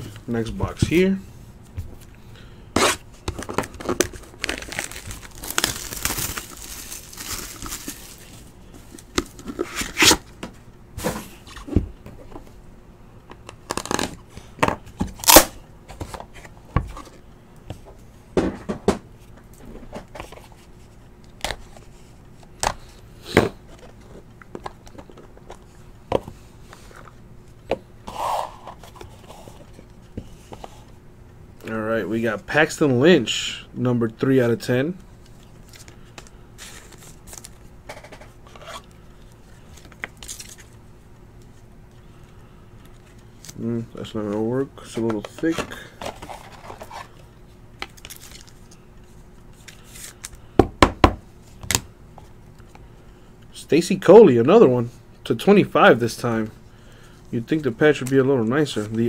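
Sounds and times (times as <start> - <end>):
plastic wrap tearing and crinkling: 3.8 - 8.4, 13.6 - 14.2, 15.2 - 15.5.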